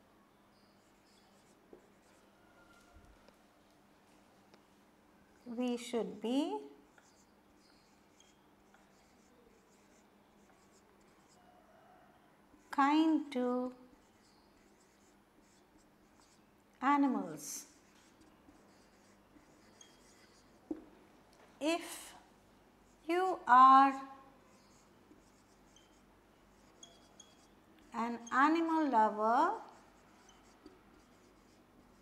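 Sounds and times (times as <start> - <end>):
marker pen writing on whiteboard: 0.6 - 2.9, 6.7 - 11.4, 12.6 - 16.5, 17.1 - 20.9, 24.4 - 32.0.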